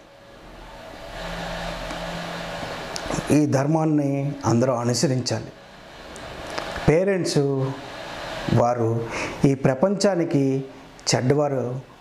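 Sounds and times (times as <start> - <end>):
mechanical hum with hiss: 0.0 - 12.0.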